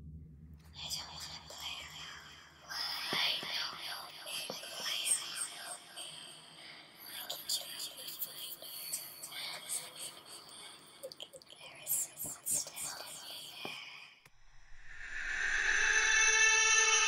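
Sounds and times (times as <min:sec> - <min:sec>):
person whispering: 0:00.8 - 0:14.1.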